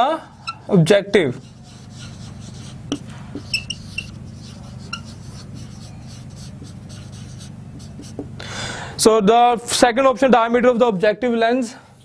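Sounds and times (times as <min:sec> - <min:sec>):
steady low hum: 0:00.0 - 0:09.6
marker writing on whiteboard: 0:00.3 - 0:08.4.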